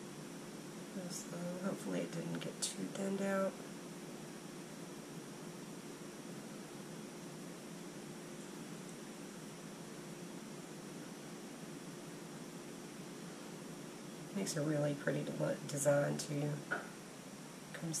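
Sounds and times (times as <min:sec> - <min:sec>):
background hiss: 0:00.0 - 0:18.0
faint hum: 0:00.0 - 0:18.0.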